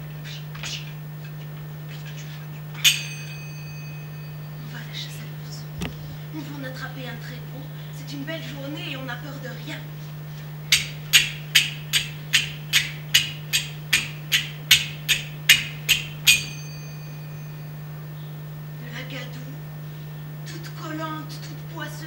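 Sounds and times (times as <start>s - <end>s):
low hum: 0.0s - 22.0s
percussion clicks: 10.7s - 16.5s.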